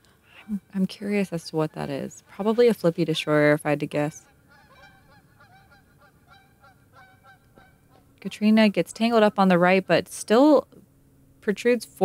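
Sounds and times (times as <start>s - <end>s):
distant geese honking: 1.6s - 10.0s.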